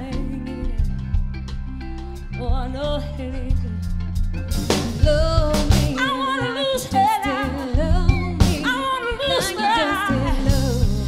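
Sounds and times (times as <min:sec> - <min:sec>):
woman singing: 0:00.0 - 0:01.1, 0:02.4 - 0:04.0, 0:05.0 - 0:11.0
live soul band playing: 0:00.0 - 0:11.0.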